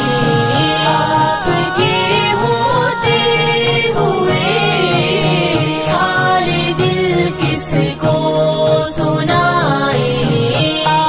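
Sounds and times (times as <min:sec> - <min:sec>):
backing music: 0:00.0 - 0:11.0
girls singing devotional song: 0:00.0 - 0:11.0.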